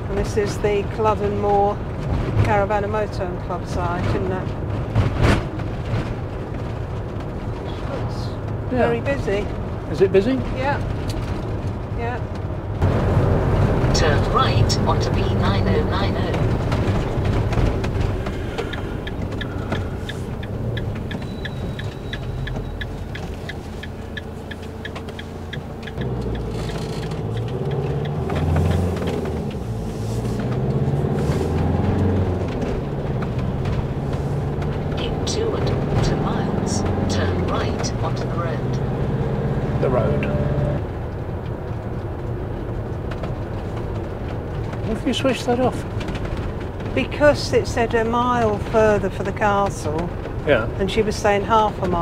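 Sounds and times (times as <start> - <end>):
engine and road noise: 0.0 - 52.0
indicator ticking: 18.7 - 26.5.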